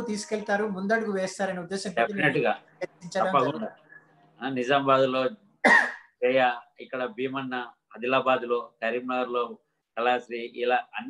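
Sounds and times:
man speaking: 0.0 - 3.8.

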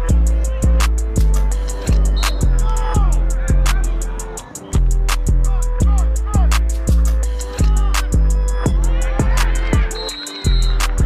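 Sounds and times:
deep bass beat: 0.0 - 11.0.

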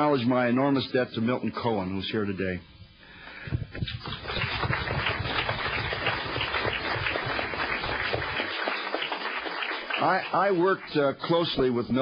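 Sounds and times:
audience applauding: 3.9 - 11.1.

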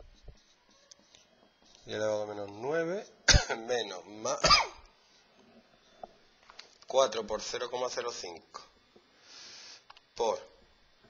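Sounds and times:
man coughing: 3.3 - 3.6, 4.4 - 4.8.

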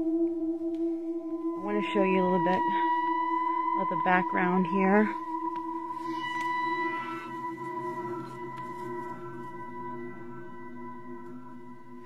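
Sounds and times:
eerie ambient drone: 0.0 - 12.0.

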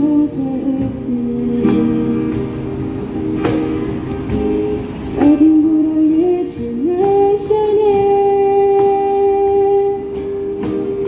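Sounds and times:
woman singing pop ballad: 0.0 - 2.2, 5.0 - 10.1
acoustic guitar: 0.0 - 11.0.

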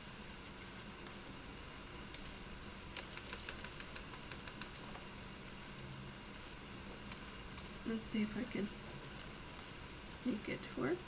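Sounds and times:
laptop keyboard typing: 2.1 - 5.1.

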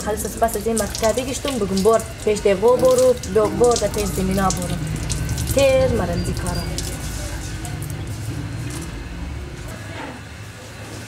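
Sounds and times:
motor rumble: 0.0 - 10.8.

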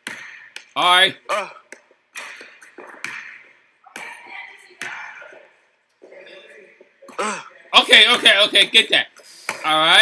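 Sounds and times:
basketball bouncing in gym: 0.0 - 0.8, 1.4 - 6.2.

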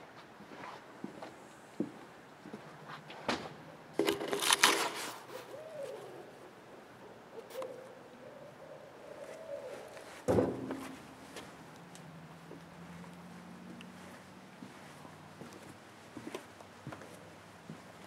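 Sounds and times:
owls hooting: 5.3 - 10.2.

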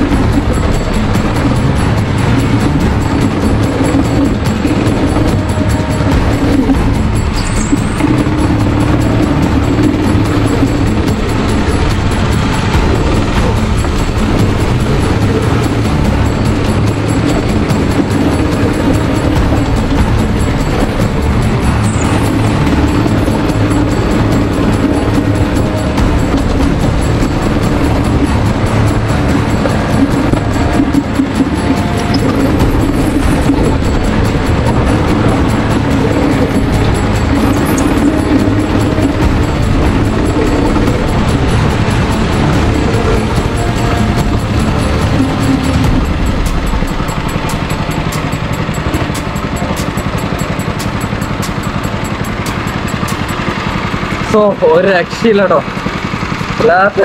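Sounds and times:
background music: 0.0 - 57.0
go-kart engine running: 0.0 - 57.0.

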